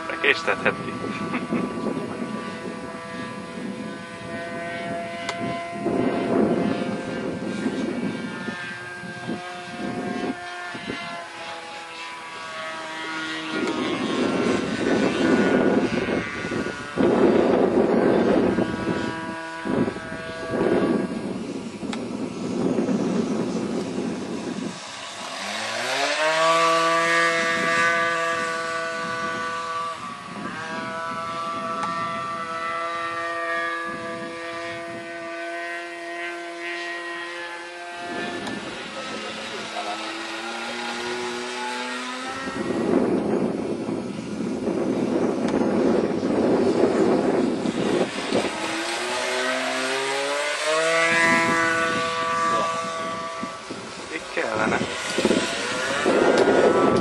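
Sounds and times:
model plane engine running: 0.0s - 57.0s.

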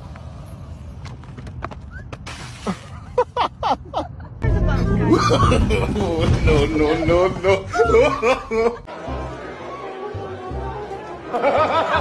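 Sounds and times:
low rumble: 4.4s - 8.9s
person crying out: 7.6s - 8.8s.

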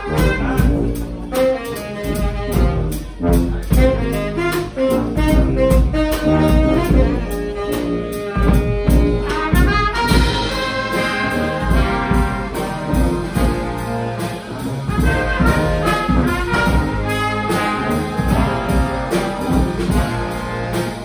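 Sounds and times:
brass band playing: 0.0s - 21.0s
drum kit beat: 0.0s - 21.0s.

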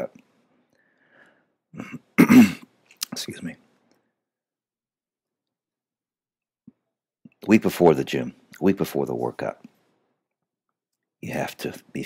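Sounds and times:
man clearing his throat: 1.7s - 2.7s.

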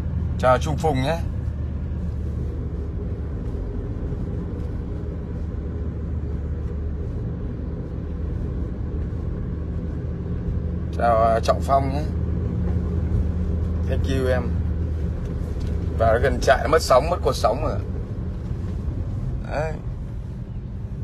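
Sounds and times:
car interior engine drone: 0.0s - 21.0s
road noise: 0.0s - 21.0s.

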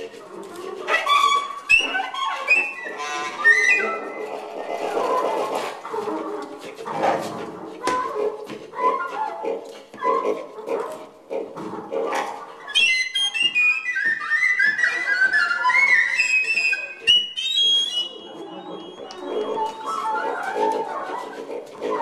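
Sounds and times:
chirping wooden whistle tones: 1.1s - 5.0s, 12.6s - 20.8s.

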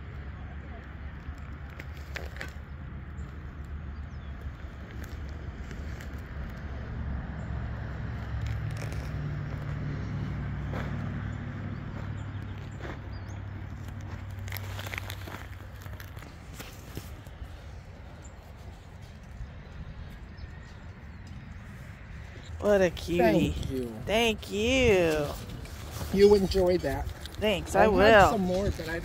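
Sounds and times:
low outdoor rumble: 0.0s - 29.0s
light clicks and crackles: 0.8s - 6.7s.

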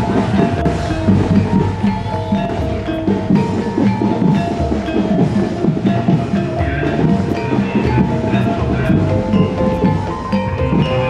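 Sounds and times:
deep drum strokes: 0.0s - 11.0s
ringing metal percussion: 0.0s - 11.0s.

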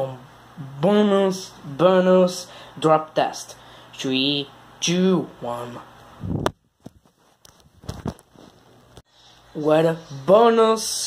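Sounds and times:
smartphone being handled: 6.4s - 9.0s.

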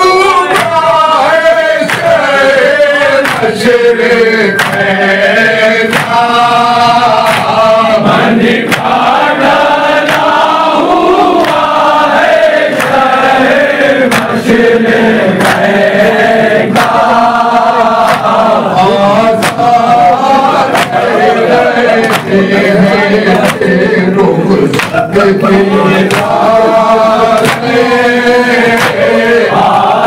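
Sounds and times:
men chanting in unison: 0.0s - 30.0s
hands slapping chests: 0.4s - 3.8s, 4.5s - 5.1s, 5.8s - 13.3s, 14.0s - 14.6s, 15.3s - 15.8s, 16.6s - 22.6s, 23.3s - 23.8s, 24.7s - 25.1s, 25.9s - 27.9s, 28.6s - 29.7s.

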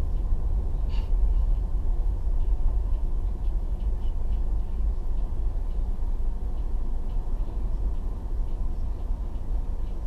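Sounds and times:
car driving low rumble: 0.0s - 10.0s.

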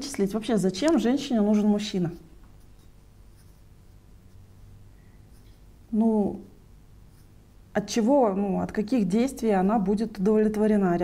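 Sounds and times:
woman's voice: 0.0s - 2.3s, 5.9s - 6.6s, 7.8s - 11.0s
faint low electrical hum: 0.0s - 11.0s.

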